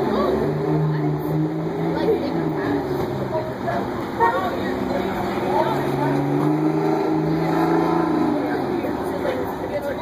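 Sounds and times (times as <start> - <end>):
bus diesel engine pulling away: 0.0 - 9.7.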